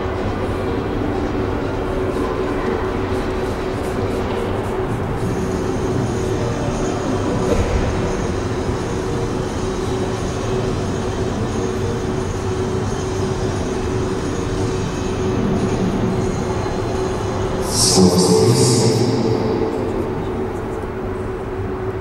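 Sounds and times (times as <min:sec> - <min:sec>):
constant hall rumble: 0:00.0 - 0:22.0
low hum: 0:17.6 - 0:22.0.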